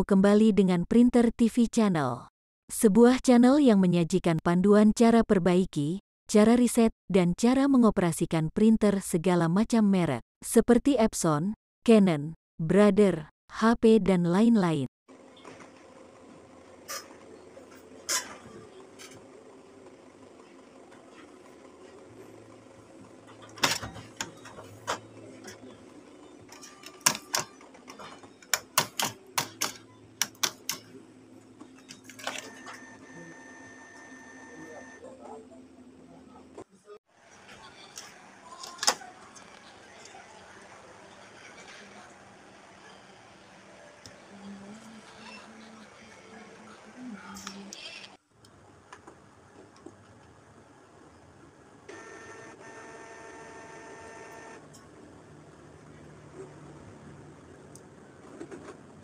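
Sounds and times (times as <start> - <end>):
printer mechanism whining: 22.4 - 31.0, 31.6 - 35.0, 51.9 - 54.8
printer mechanism clicking: 26.5 - 30.9.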